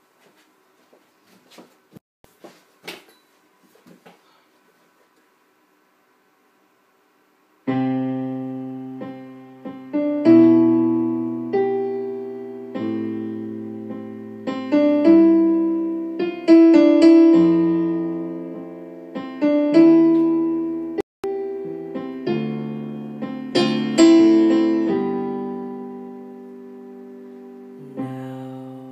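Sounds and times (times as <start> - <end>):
piano playing slow chords: 7.6 - 28.9.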